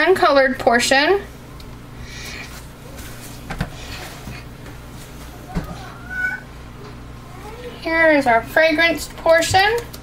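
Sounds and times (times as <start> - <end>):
low steady room hum: 0.0 - 10.0.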